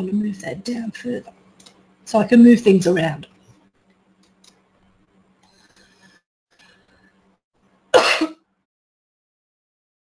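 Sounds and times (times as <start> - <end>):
person coughing: 8.0 - 8.4.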